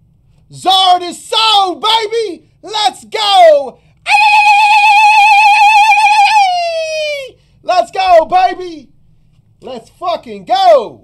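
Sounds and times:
man yelling with vibrato: 0.6s - 8.8s.

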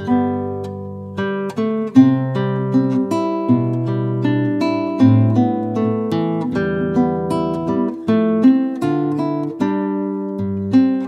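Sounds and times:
fingerstyle classical guitar: 0.0s - 11.0s.

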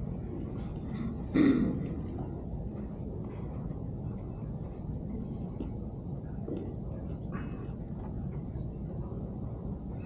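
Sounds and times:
low room rumble: 0.0s - 10.0s
person clearing throat: 0.9s - 2.1s.

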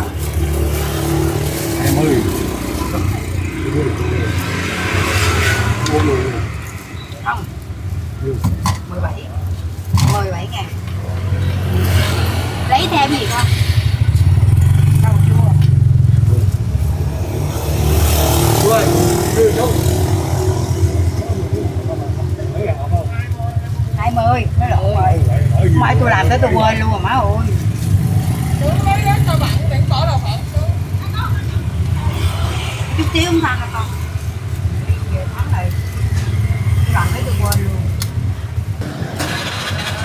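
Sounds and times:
motorbike engines passing: 0.0s - 40.0s
people talking: 1.8s - 4.7s, 5.7s - 7.5s, 10.0s - 10.8s, 12.6s - 13.6s, 14.9s - 16.5s, 18.6s - 20.1s, 20.9s - 27.6s, 28.4s - 32.2s, 33.0s - 34.1s, 34.8s - 35.8s, 36.8s - 37.9s.

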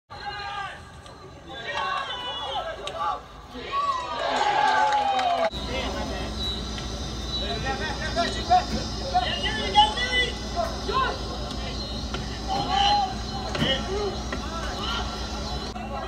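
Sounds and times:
people calling and shouting: 0.1s - 16.0s.

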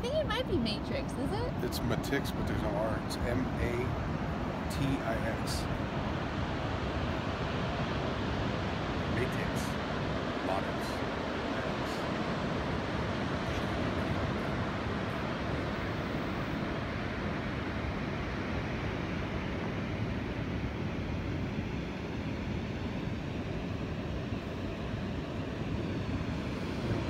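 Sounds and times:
distant ocean surf: 0.0s - 27.0s.

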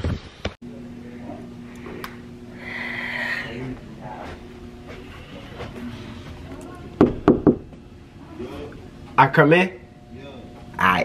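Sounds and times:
knuckles knocking on door: 7.0s - 7.7s.

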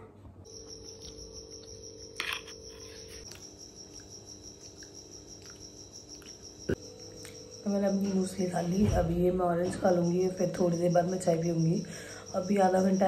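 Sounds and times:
cricket trilling: 0.4s - 13.0s.

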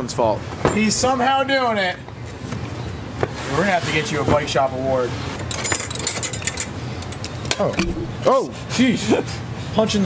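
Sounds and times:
metal keys clinking: 5.4s - 8.2s.

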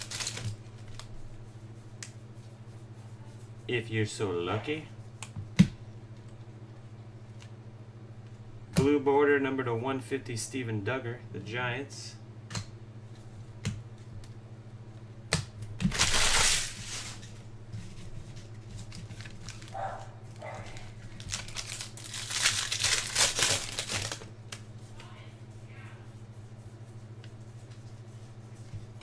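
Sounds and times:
foil wrapper crinkling and tearing: 0.0s - 1.2s, 15.9s - 17.3s, 18.8s - 24.6s
low electrical hum: 0.0s - 29.0s.

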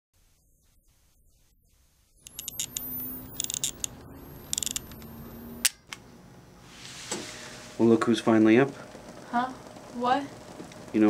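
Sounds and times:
flash charging whine: 2.1s - 6.0s
rapid camera clicking: 2.3s - 5.1s
camera shutter clicks: 2.3s - 5.8s
low steady hum: 2.3s - 10.9s.

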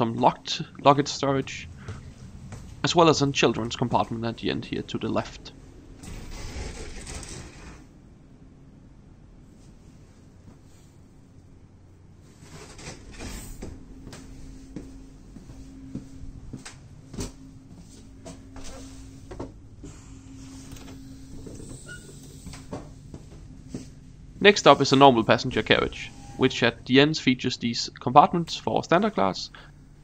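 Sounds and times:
faint steady hum in railway carriage: 0.0s - 30.0s
sliding door mechanism running: 5.7s - 7.9s, 18.5s - 23.2s, 24.3s - 27.5s.

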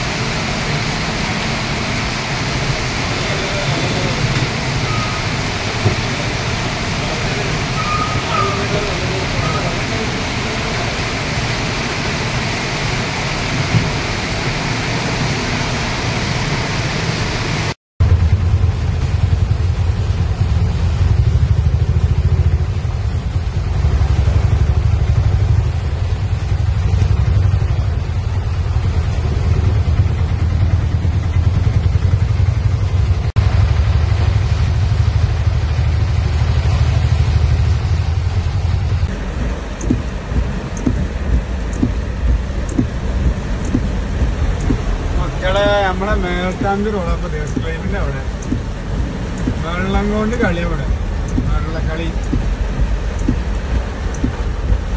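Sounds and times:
car driving through flooded road: 0.0s - 54.9s
heavy rain: 0.0s - 54.9s
traffic wading through floodwater: 0.0s - 54.9s
raindrops tapping on car: 39.0s - 54.9s.

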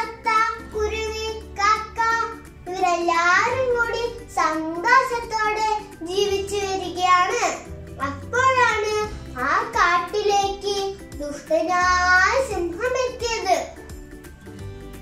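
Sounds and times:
girl telling a story: 0.0s - 13.9s.

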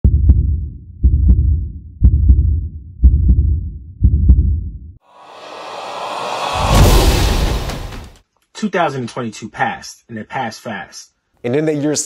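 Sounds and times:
heartbeat double thumps: 0.0s - 4.9s
swell of noise: 5.1s - 8.2s.

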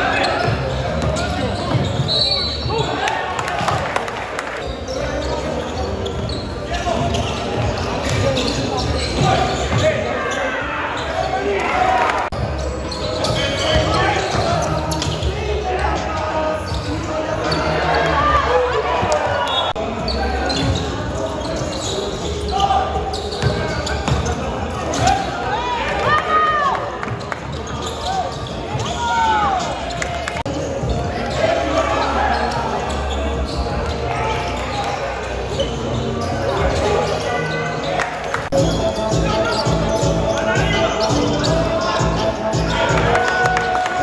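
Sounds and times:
basketball bouncing on court: 23.4s - 25.2s.

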